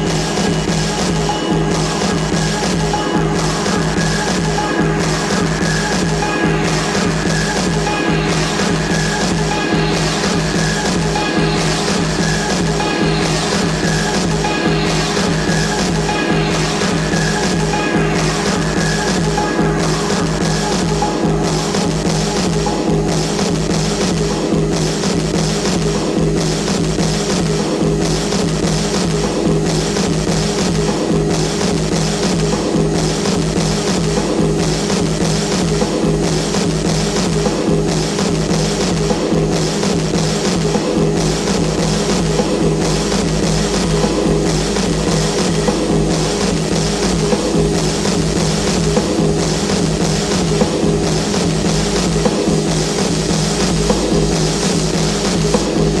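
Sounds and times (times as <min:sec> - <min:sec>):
techno kick-drum beat: 0:00.0 - 0:56.0
sustained low synth tones: 0:41.0 - 0:56.0.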